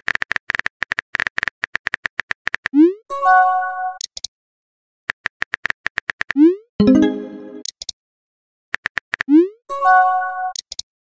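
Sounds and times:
chime ending in high blips: 6.8s - 7.6s.

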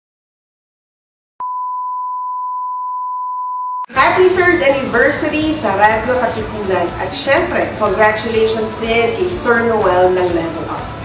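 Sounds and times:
steady electronic beep: 1.4s - 4.0s
woman speaking: 3.9s - 10.9s.

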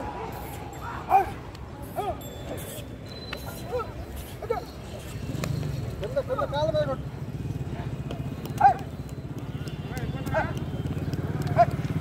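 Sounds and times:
dog barking: 8.6s - 8.9s.

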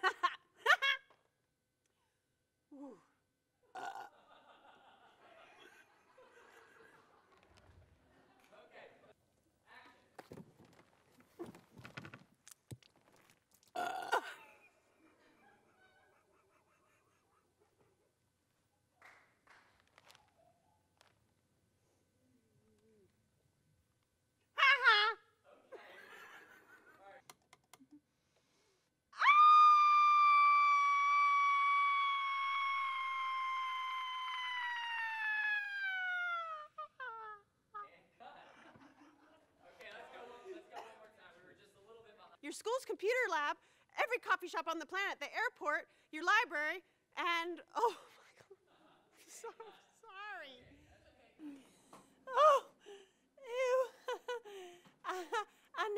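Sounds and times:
person making wordless vocal noises: 2.7s - 3.1s, 13.7s - 14.3s
woman screaming: 29.2s - 37.4s.

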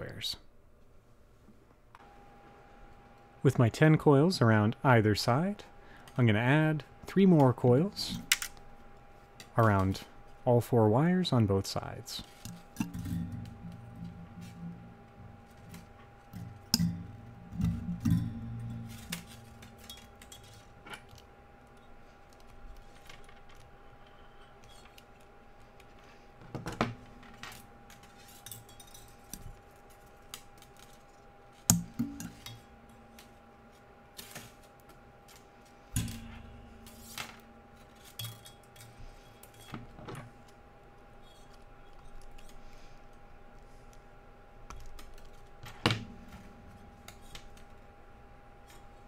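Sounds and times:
faint steady hum: 0.0s - 49.0s
metal wire clicking and rustling: 12.2s - 26.1s, 27.1s - 43.2s.

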